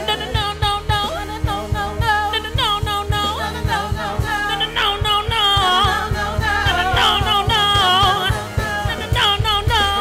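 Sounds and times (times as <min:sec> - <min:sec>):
bass: 0:00.0 - 0:10.0
keyboard chords: 0:00.0 - 0:10.0
woman singing: 0:00.0 - 0:10.0.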